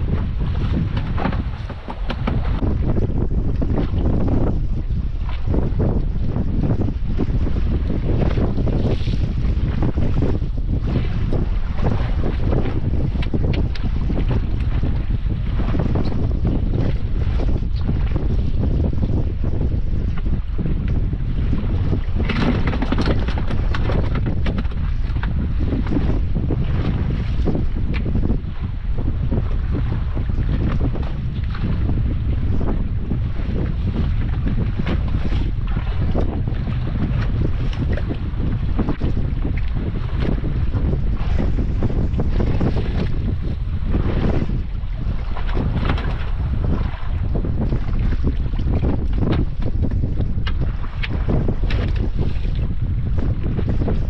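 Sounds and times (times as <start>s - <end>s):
waves lapping against hull: 0.0s - 54.0s
wind buffeting microphone: 0.0s - 54.0s.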